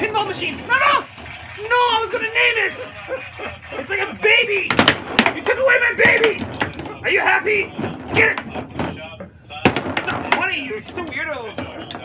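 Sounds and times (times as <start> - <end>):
excited voices: 0.0 - 4.7
foosball ball knocks: 4.7 - 12.0.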